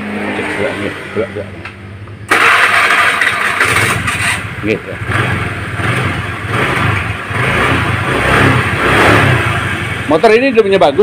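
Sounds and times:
scooter engine revving: 0:02.3 - 0:10.2.

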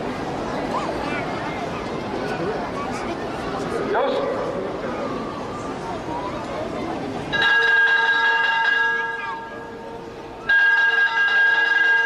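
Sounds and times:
signal bell ringing: 0:10.5 - 0:12.0.

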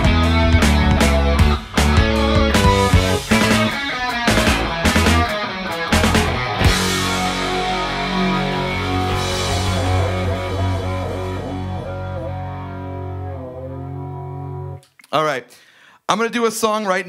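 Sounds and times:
electric guitar and bass chord ringing: 0:00.0 - 0:14.8.

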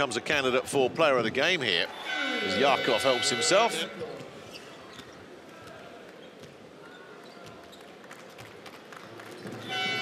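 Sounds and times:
murmur of crowd: 0:00.0 - 0:10.0.

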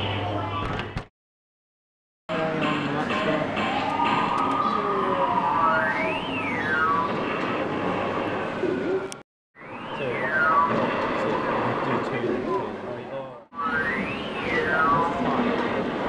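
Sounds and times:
machine noise: 0:02.3 - 0:16.0
electronic game beeps sweeping in pitch: 0:04.1 - 0:07.2, 0:09.6 - 0:11.5, 0:13.6 - 0:15.5.

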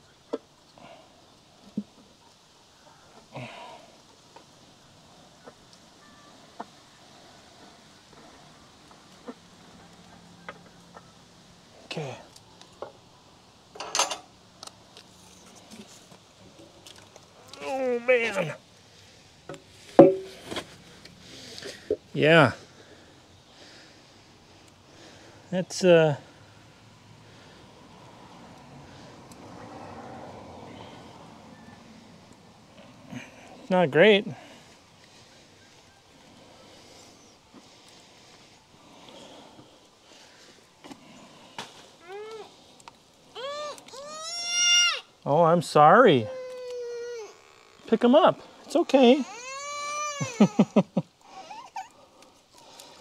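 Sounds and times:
metal cover tapping pavement: 0:19.5 - 0:20.6
metal clank ringing: 0:20.0 - 0:20.4
little girl crying: 0:42.0 - 0:42.6, 0:43.4 - 0:45.1, 0:46.2 - 0:47.5, 0:49.2 - 0:52.0.

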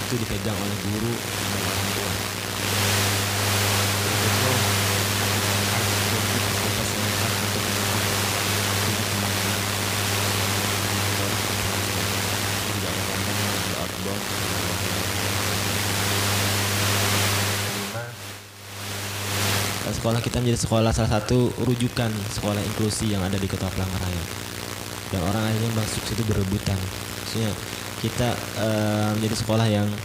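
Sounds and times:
low electrical hum: 0:00.0 - 0:30.0.

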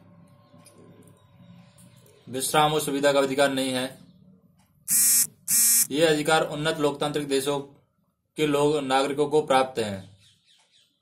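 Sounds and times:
short harsh buzzes: 0:04.9 - 0:05.9.

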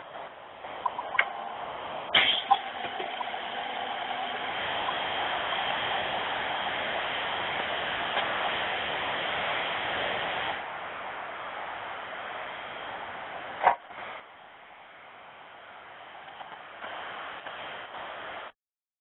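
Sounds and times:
heavy trucks rushing noise: 0:00.0 - 0:18.5.

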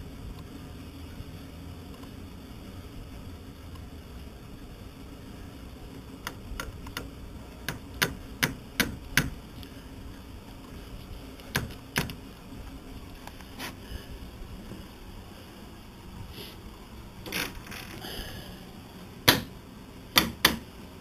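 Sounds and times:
steady low hum: 0:00.0 - 0:21.0
hand tools clicking and tapping: 0:06.3 - 0:09.4, 0:11.4 - 0:12.2, 0:20.2 - 0:20.6.

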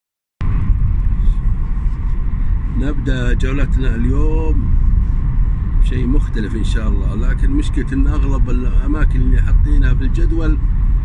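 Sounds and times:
car engine and road noise: 0:00.4 - 0:11.0
man talking: 0:02.8 - 0:04.7, 0:05.8 - 0:10.6.

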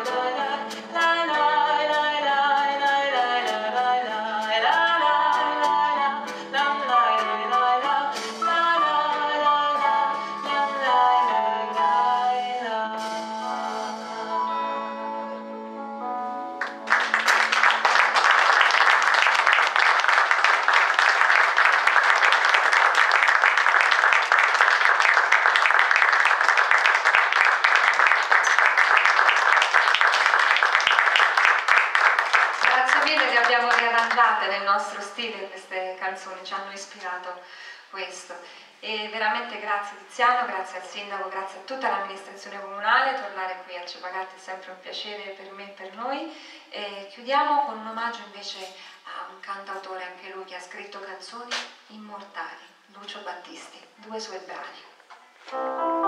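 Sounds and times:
woman singing: 0:00.0 - 0:14.4
small jazz band playing: 0:00.0 - 0:34.1, 0:55.5 - 0:56.0
audience applause: 0:16.6 - 0:34.3.

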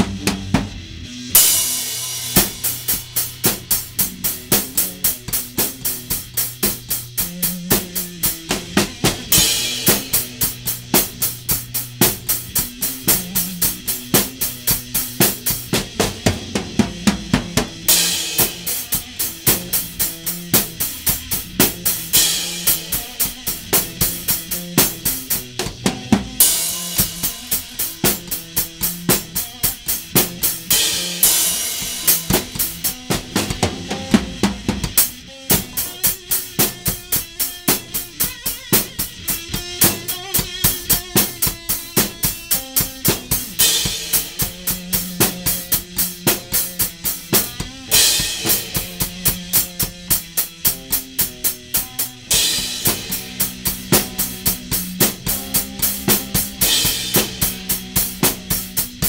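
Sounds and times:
drum kit beat: 0:00.0 - 0:59.0
electric guitar held notes: 0:00.0 - 0:59.0.

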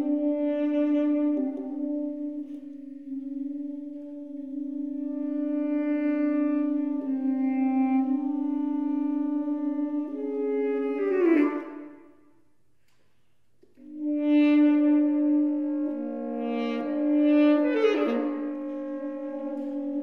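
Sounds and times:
tenor saxophone duet: 0:00.0 - 0:20.0.

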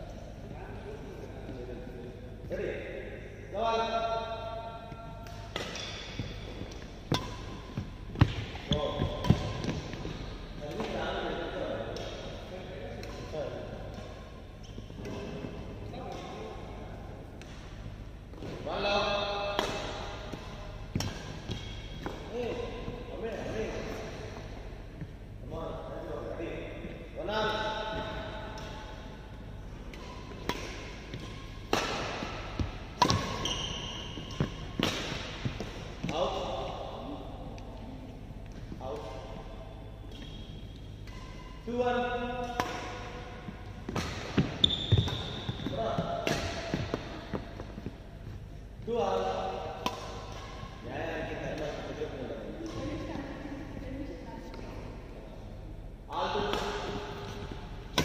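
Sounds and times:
rackets striking shuttlecock: 0:05.0 - 0:11.0, 0:29.8 - 0:36.2, 0:40.1 - 0:47.9, 0:49.7 - 0:50.8, 0:56.4 - 0:58.0.

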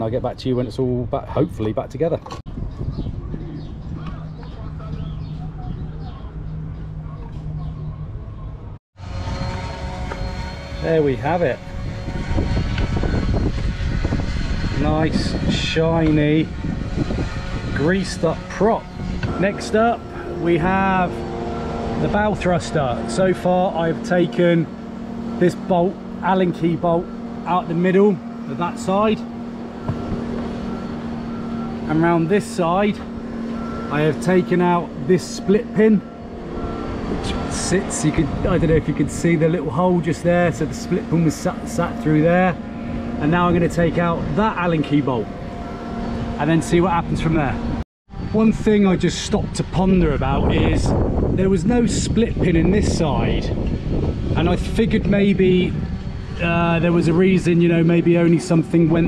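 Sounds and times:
low mechanical hum: 0:00.0 - 0:59.0
outdoor noise: 0:00.0 - 0:59.0
faint voices: 0:03.4 - 0:08.4
droning hum with held tones: 0:09.0 - 0:59.0.

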